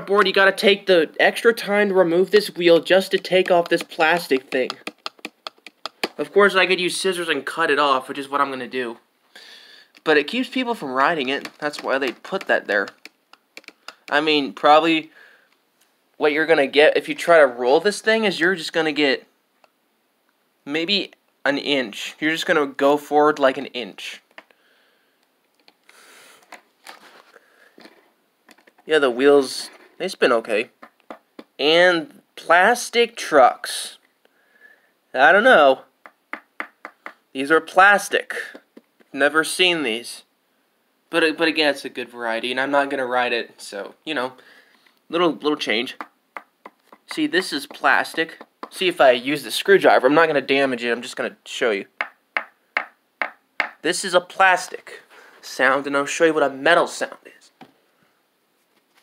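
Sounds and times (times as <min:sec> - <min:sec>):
screwdriver tapping plastic: 0:03.1 - 0:06.2, 0:11.4 - 0:14.2, 0:30.8 - 0:31.6, 0:46.0 - 0:48.8.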